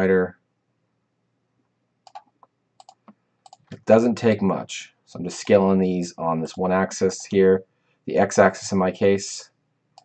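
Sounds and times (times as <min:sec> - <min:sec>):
mouse and keyboard clicks: 0:02.1 - 0:03.8.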